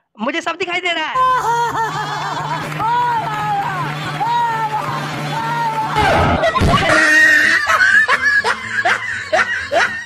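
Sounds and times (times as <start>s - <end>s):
small child laughing: 1.2s - 3.4s, 6.0s - 10.0s.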